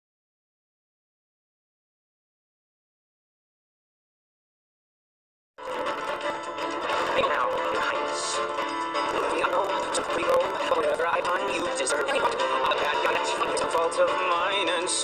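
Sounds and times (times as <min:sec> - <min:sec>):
orchestral backing music: 0:05.6 - 0:15.0
young man singing: 0:09.2 - 0:15.0.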